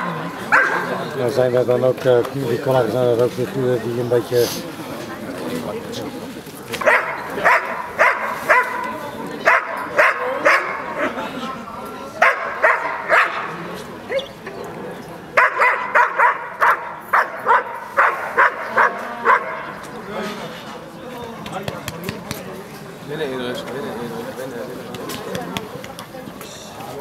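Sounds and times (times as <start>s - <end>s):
dog barking sharply: 0.5s - 0.9s, 6.8s - 8.9s, 12.2s - 13.5s, 15.4s - 19.7s.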